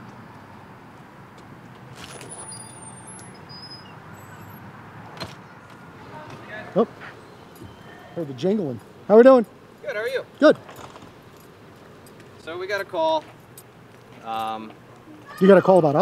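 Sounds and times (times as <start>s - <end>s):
background traffic hum: 0.0s - 16.0s
faint high-pitched tinkles: 7.2s - 8.8s.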